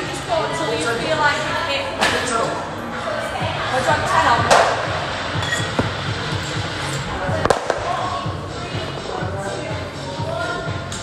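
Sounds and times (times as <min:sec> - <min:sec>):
background music with beat: 0:03.3 - 0:11.0.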